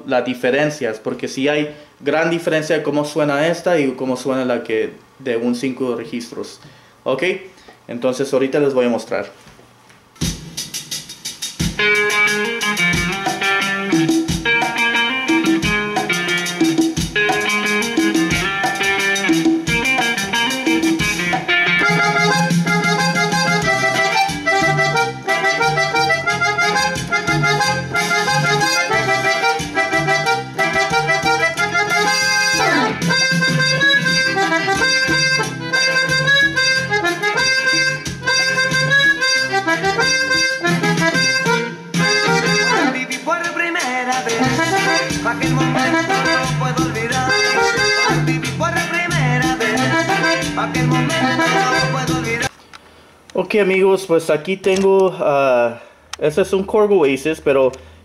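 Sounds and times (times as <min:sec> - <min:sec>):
steady beat: 0:10.2 - 0:43.3, 0:44.2 - 0:52.5
accordion tune: 0:11.6 - 0:52.5.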